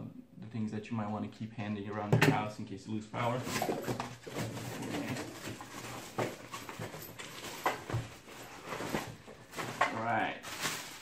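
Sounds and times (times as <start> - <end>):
rummaging in nylon bag: 3.2 - 11.0
crinkling plastic: 3.4 - 11.0.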